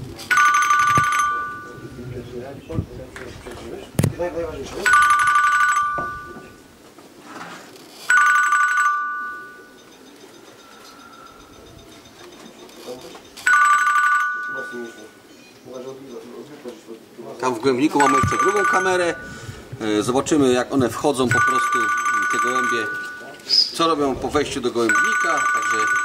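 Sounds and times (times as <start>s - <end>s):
two-tone electronic beep: 18.0s - 19.4s.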